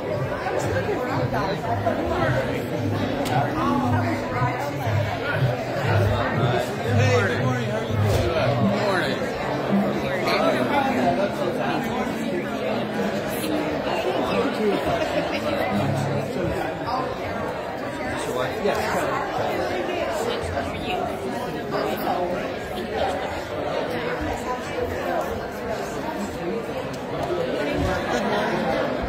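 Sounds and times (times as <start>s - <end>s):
chatter of many people: 0.0s - 29.0s.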